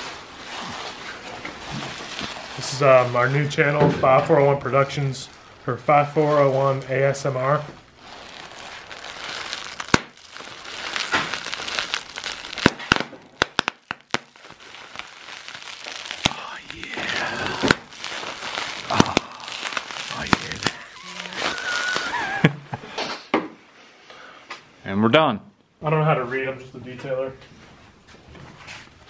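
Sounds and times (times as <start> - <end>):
plastic wrapping crinkling: 0.0 - 22.5.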